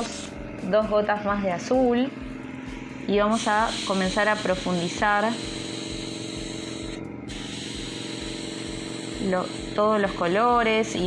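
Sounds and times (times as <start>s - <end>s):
airbrush hissing: 3.3s - 10.1s.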